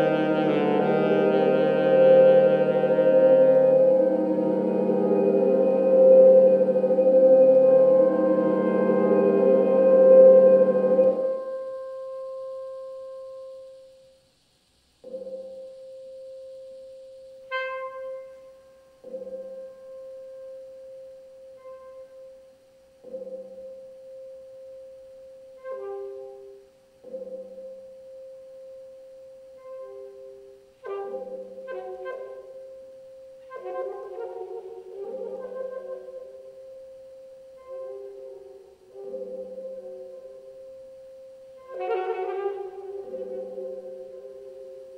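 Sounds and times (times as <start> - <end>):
saxophone with electronics: 0.0 - 14.2, 15.0 - 44.9.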